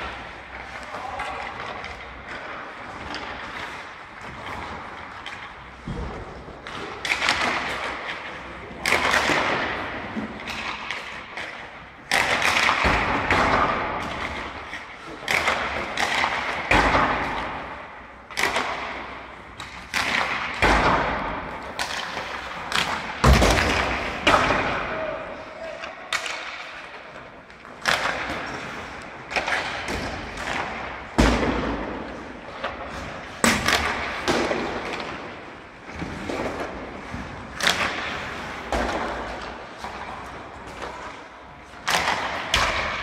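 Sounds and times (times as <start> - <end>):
pucks and sticks knocking boards: 0.0 - 43.0.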